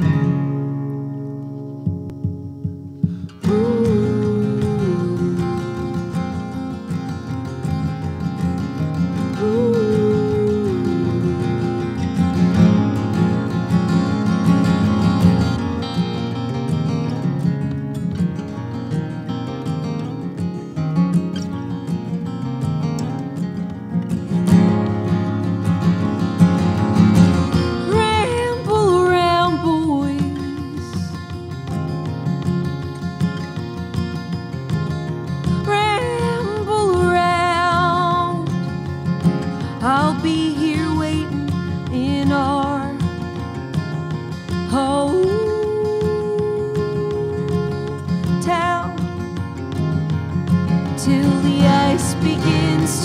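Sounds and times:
acoustic guitars strumming: 0.0s - 53.0s
person singing: 3.2s - 6.1s, 9.2s - 12.4s, 27.9s - 31.2s, 44.7s - 49.2s, 51.0s - 53.0s.

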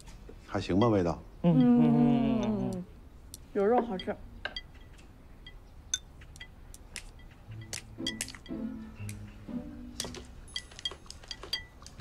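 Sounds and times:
soft background music: 7.1s - 12.0s
chopsticks clinking on dishes: 10.0s - 12.0s.

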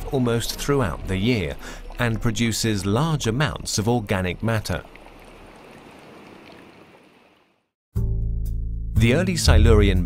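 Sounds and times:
underwater rush of water: 0.0s - 7.5s.

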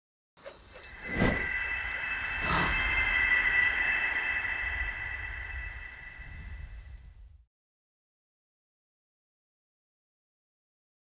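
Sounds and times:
high ringing tone: 0.7s - 7.4s
low rumble: 0.8s - 7.5s
sound design hit: 1.0s - 7.3s.

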